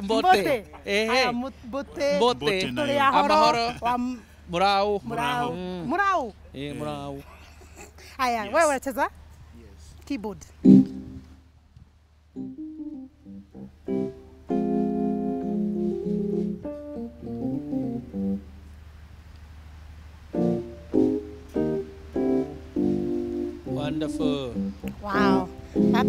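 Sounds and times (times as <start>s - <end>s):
electronic keyboard playing: 10.6s - 11.4s, 12.4s - 18.5s, 20.4s - 26.0s.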